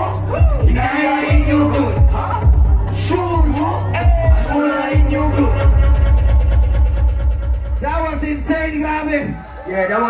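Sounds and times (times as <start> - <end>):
fast ticking beat: 0.0 - 9.1
deep heavy bass: 0.0 - 9.5
live hip-hop music: 0.0 - 10.0.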